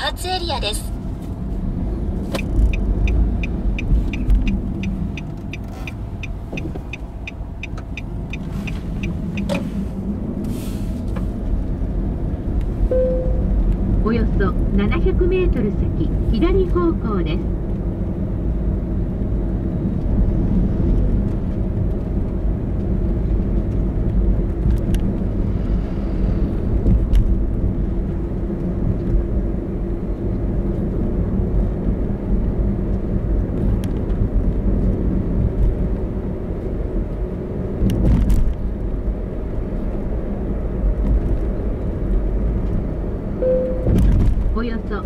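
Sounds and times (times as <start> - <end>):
tyre and road noise: 0.0 - 45.0
faint engine drone: 12.5 - 17.6, 41.6 - 45.0.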